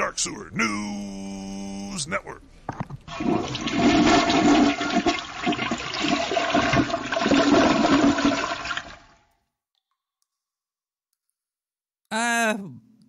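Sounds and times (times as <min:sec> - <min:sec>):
toilet flushing: 0:03.1 - 0:09.2.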